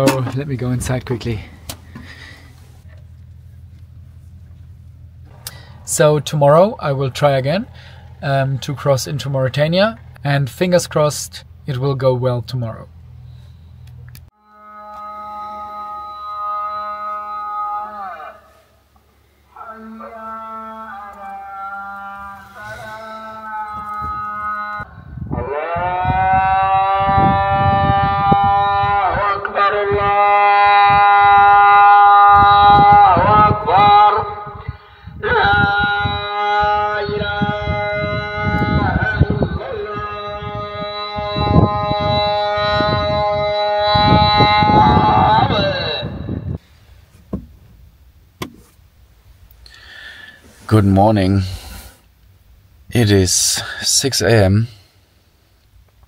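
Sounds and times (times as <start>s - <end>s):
call to prayer over loudspeaker: 0.0s - 1.6s, 5.3s - 12.9s, 14.3s - 46.6s, 50.4s - 51.9s, 52.9s - 54.8s.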